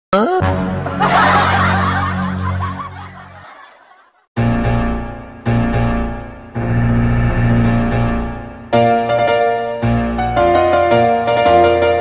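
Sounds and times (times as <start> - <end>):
high-pitched laugh: 0.9 - 4.3.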